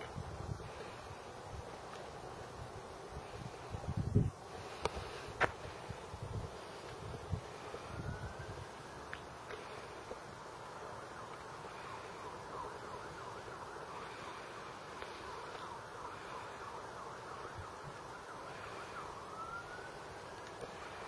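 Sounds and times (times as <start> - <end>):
distant siren: 0.6 - 21.0.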